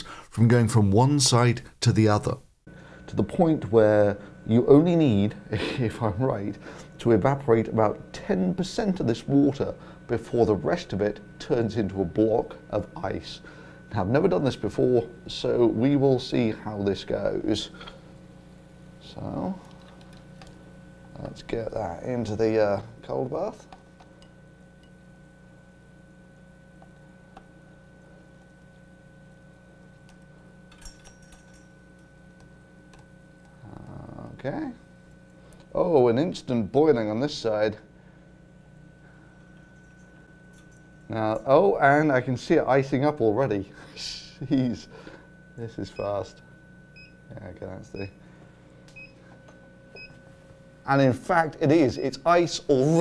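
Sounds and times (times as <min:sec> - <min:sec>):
man talking: 0:00.0 - 0:02.4, 0:03.1 - 0:17.8, 0:19.0 - 0:19.6, 0:21.1 - 0:23.7, 0:33.6 - 0:34.8, 0:35.7 - 0:37.9, 0:41.1 - 0:45.0, 0:45.6 - 0:46.4, 0:47.3 - 0:48.1, 0:50.9 - 0:53.0
faint electrical hum: 0:00.0 - 0:53.0.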